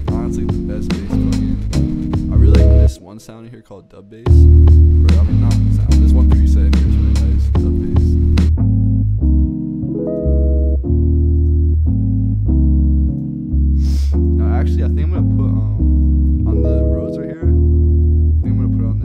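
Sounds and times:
deep bass line: 0.0 - 2.9, 4.3 - 19.0
looped keys chords: 0.0 - 3.0, 4.3 - 19.0.

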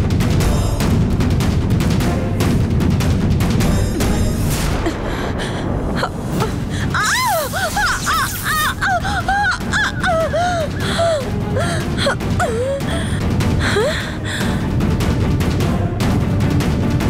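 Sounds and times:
low dense music bed: 0.0 - 17.0
high wordless voice singing: 3.7 - 5.6.

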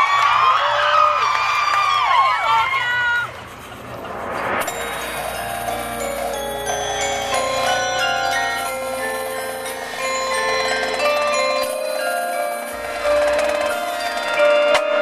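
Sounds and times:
low sustained drone: 3.3 - 15.0
metal mallet percussion: 3.5 - 15.0.

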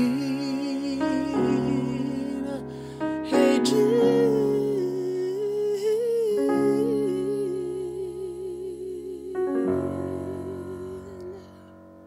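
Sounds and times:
man singing long note with vibrato: 0.0 - 11.6
sustained piano chords: 0.0 - 12.0.

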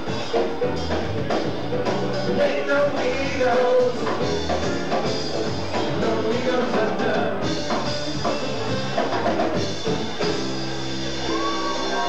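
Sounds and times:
drum kit: 0.0 - 12.0
live rock band playing: 0.0 - 12.0.

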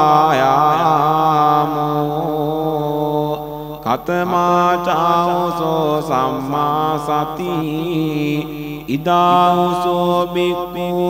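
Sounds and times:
person chanting: 0.0 - 11.0.

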